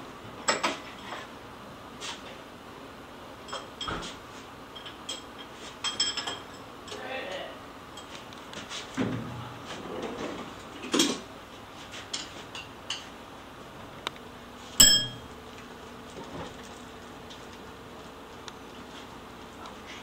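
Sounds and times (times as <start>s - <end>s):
sharp metallic clink: 14.8s - 15.3s.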